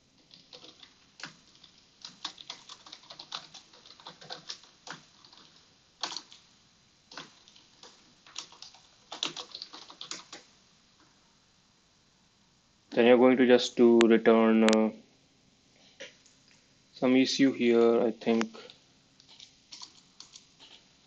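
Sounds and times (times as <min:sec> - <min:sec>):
keyboard typing: 0:00.2 - 0:06.4, 0:07.1 - 0:10.5, 0:19.2 - 0:20.8.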